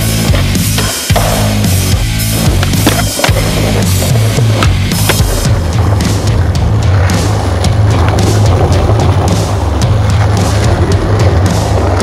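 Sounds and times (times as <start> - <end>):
loud music with steady bass: 0.0 - 12.0
skateboard wheels rolling on paving: 0.0 - 12.0
skateboard clacking on ledge: 2.5 - 12.0.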